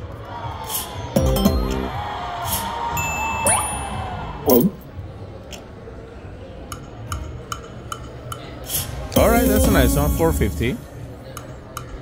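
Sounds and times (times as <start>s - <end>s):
background music: 1.2s - 5.0s, 9.1s - 11.0s
background chatter: 3.9s - 12.0s.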